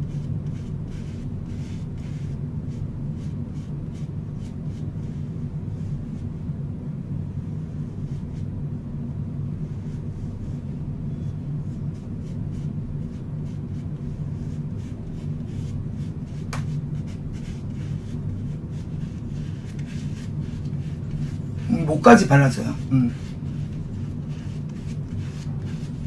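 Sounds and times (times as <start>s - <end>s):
steady low hum: 0.0s - 26.0s
makeup puff rubbing on skin: 11.8s - 26.0s.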